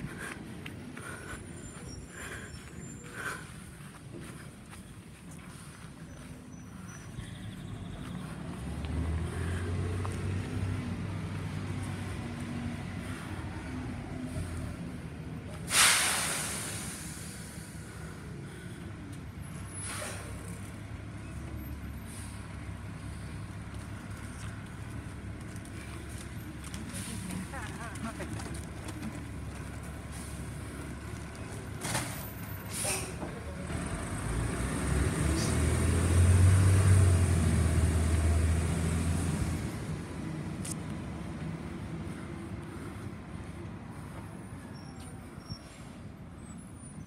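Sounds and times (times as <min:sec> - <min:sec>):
air brakes hissing: 0:15.5 - 0:18.4, 0:19.4 - 0:20.7, 0:31.8 - 0:33.4.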